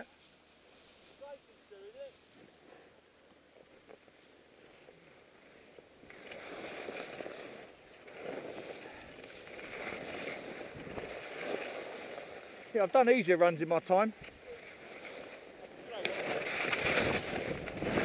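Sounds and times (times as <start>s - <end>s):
skis scraping on snow: 0.6s - 18.0s.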